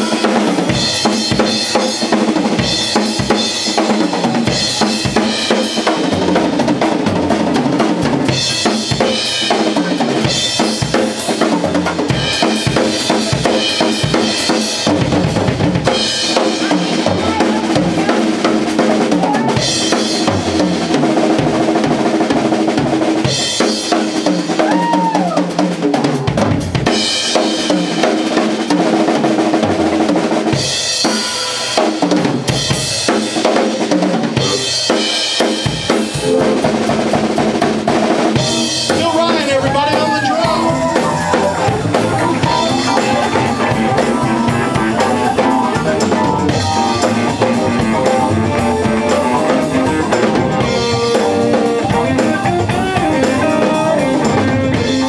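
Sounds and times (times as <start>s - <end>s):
drum kit played hard: 0.0s - 55.0s
bass guitar notes: 36.1s - 55.0s.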